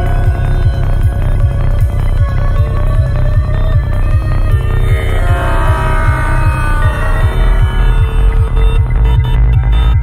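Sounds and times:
deep sub-bass: 0:00.0 - 0:10.0
psychedelic trance music: 0:00.0 - 0:10.0.

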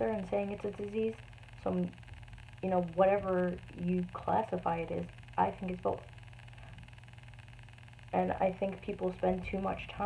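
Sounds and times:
low hum with soft hiss: 0:00.0 - 0:10.0.

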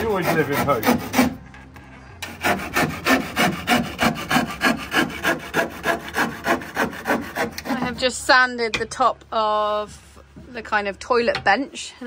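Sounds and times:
hand saw cutting wood: 0:00.0 - 0:01.4, 0:02.2 - 0:08.2.

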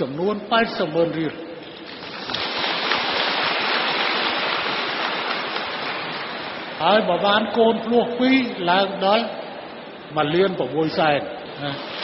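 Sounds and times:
steady rushing hiss: 0:02.1 - 0:09.2.

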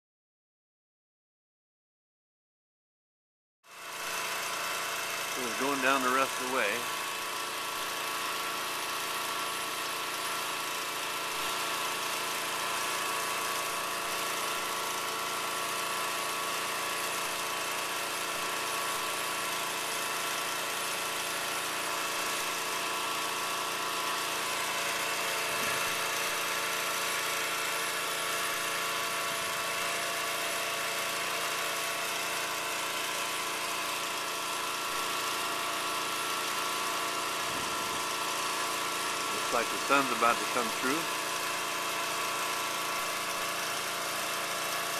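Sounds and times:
engine running steadily: 0:03.8 - 0:44.9.

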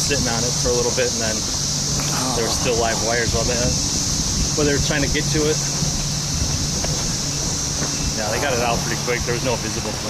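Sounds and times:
road rumble: 0:00.0 - 0:10.0
wind noise on microphone: 0:01.8 - 0:09.6
tyres hissing on wet street: 0:07.2 - 0:10.0.

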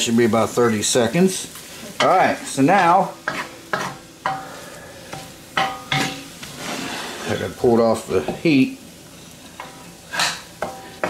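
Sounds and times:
light sizzle: 0:00.0 - 0:11.0
spatula scraping noodles in pan: 0:03.2 - 0:04.4, 0:05.0 - 0:07.6, 0:09.6 - 0:11.0
spatula clinking on pan: 0:03.3 - 0:04.5, 0:05.1 - 0:06.3, 0:09.6 - 0:11.0.

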